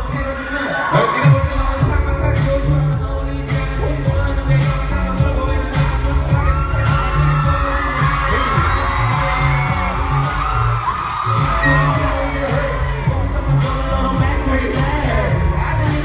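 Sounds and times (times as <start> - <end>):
crowd screaming and cheering: 0.0 - 16.0
hip-hop beat with heavy bass: 0.0 - 16.0
rapper's voice on microphone: 0.0 - 16.0.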